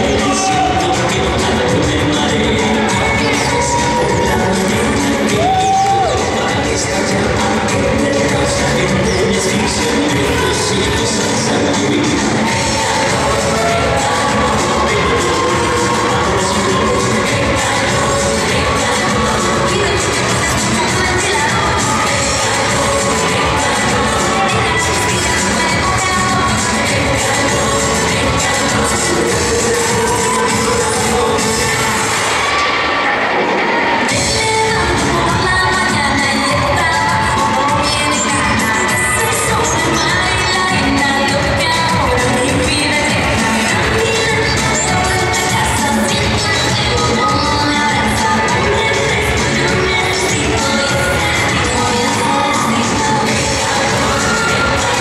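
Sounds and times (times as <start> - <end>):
crowd cheering and shouting: 0.0 - 55.0
latin dance music: 0.0 - 55.0.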